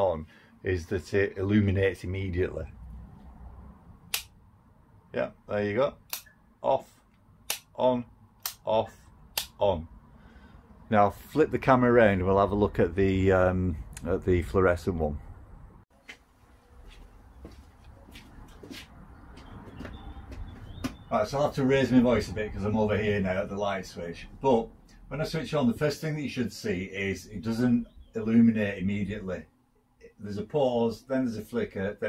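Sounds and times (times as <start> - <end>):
light switch click: 4.1 - 4.3
footsteps and shuffling: 16.0 - 21.1
light scuffs and knocks: 16.0 - 21.1.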